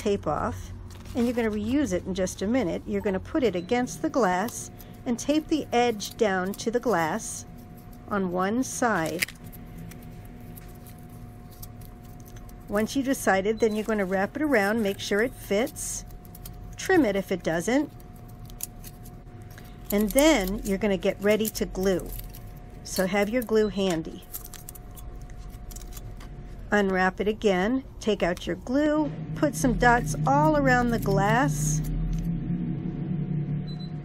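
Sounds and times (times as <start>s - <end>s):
faint constant whine: 0.0s - 34.0s
low motor rumble: 0.0s - 34.0s
low steady hum: 0.0s - 34.0s.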